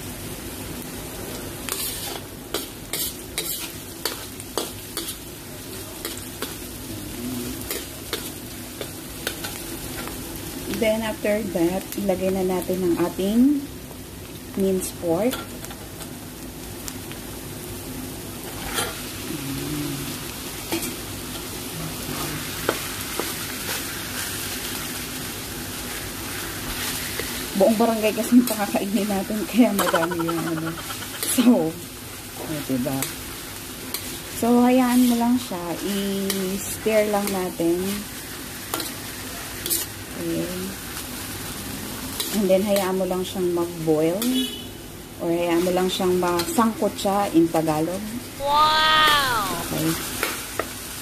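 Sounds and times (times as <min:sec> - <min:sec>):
meat sizzling in hot oil: 0:00.0 - 0:51.0
metal spoon scraping a pan: 0:01.7 - 0:05.2, 0:18.6 - 0:19.0, 0:29.7 - 0:31.5, 0:38.7 - 0:40.0, 0:42.2 - 0:42.9.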